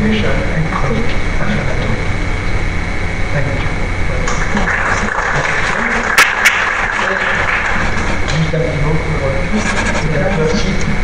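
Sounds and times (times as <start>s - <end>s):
steady electrical hum: 0.0s - 11.0s.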